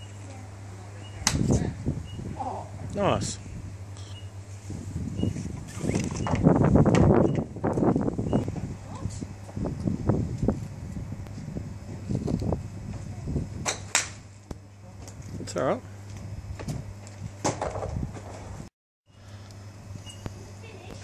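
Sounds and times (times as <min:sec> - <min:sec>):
golf club striking ball: 0:13.6 - 0:14.2.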